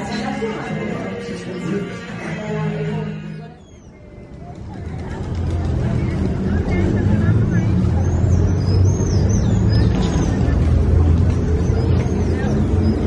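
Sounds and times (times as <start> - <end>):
babble of voices: 0.0 - 13.0
low traffic rumble: 0.0 - 13.0.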